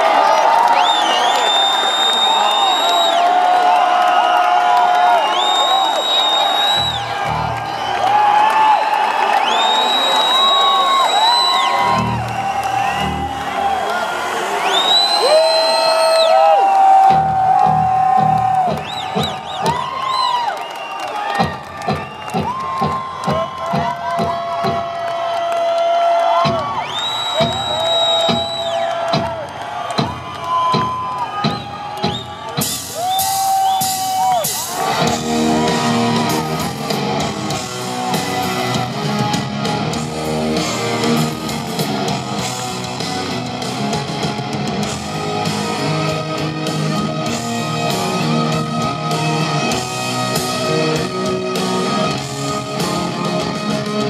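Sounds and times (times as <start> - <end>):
crowd cheering and whooping: 0.0 - 54.0
drum beat: 16.9 - 20.1, 21.3 - 25.1, 26.3 - 45.8
live rock band: 30.0 - 54.0.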